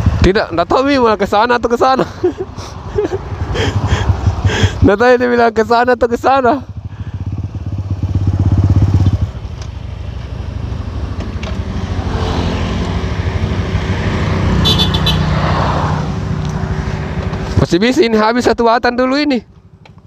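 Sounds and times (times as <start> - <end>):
motorbikes passing: 0.0 - 20.0
motorcycle engine idling: 3.3 - 11.4, 19.0 - 20.0.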